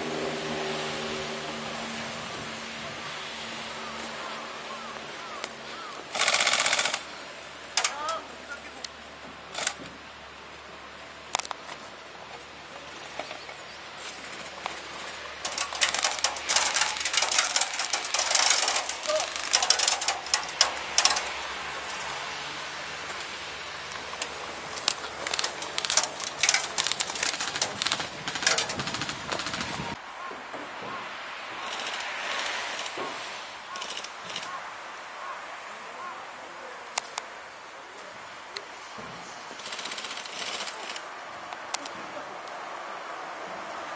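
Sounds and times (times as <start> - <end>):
airsoft guns firing in bursts: 6.2 - 7.1, 25.9 - 30.0.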